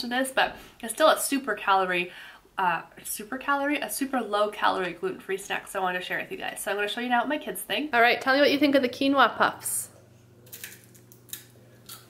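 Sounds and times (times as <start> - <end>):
child crunching puffed snacks: 10.5 - 12.0.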